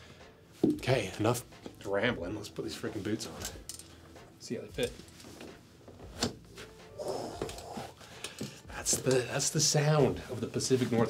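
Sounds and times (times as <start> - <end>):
leather rustling: 4.8 - 9.4.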